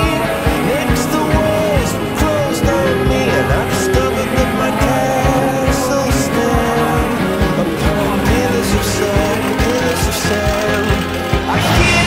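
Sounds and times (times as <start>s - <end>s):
rock music: 0.0s - 12.0s
steady drum beat: 0.0s - 12.0s.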